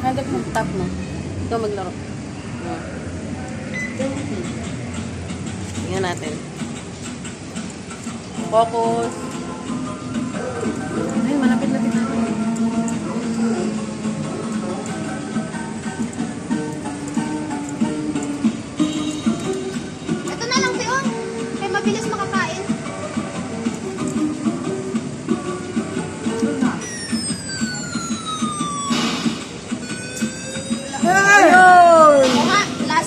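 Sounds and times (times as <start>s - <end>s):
electronic arcade game music: 5.9s - 33.0s
electronic tone sweeping downward: 26.8s - 32.8s.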